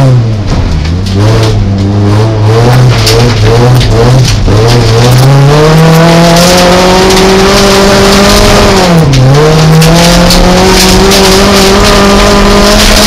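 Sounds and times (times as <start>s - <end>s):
car engine at high revs: 0.0s - 13.0s.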